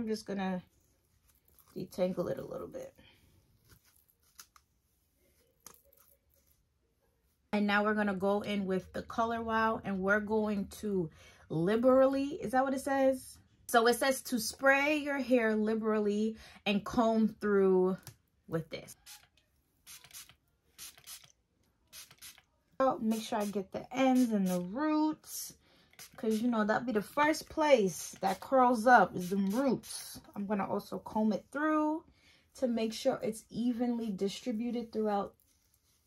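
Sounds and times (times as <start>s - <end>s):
comb drawn through damp hair: 0.7s - 2.5s, 3.5s - 6.8s, 18.9s - 21.3s, 35.3s - 36.0s
spray bottle hissing: 19.0s - 19.3s, 19.9s - 21.3s, 21.9s - 22.4s, 25.9s - 26.4s.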